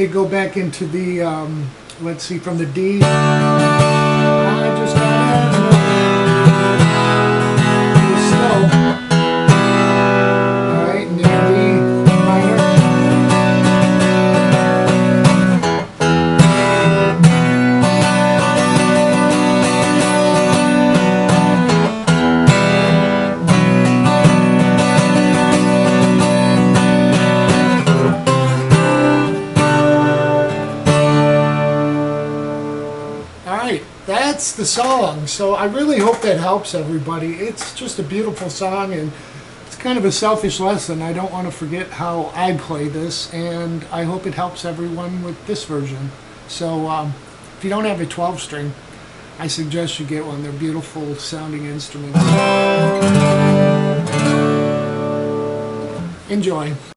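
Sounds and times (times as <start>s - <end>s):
acoustic guitar strummed hard: 1.7s - 44.6s, 52.0s - 56.9s.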